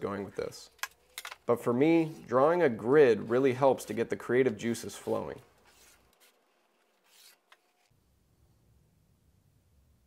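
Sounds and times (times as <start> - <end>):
pencil scratching along straightedge: 4.8 - 6.4, 7.0 - 7.9.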